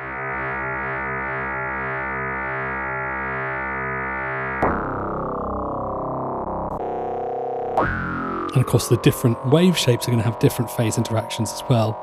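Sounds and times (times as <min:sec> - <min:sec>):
synthesizer tone beating: 0:00.0 - 0:12.0.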